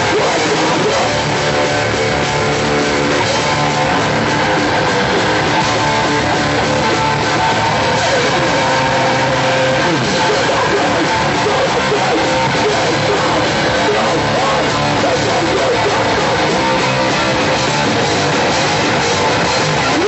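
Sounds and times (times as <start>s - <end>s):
distorted electric guitars: 0.0s - 20.0s
drums: 0.0s - 20.0s.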